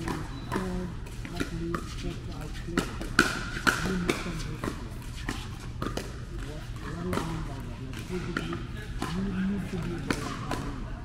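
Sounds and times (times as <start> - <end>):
paddles hitting plastic ball: 0.0 - 10.8.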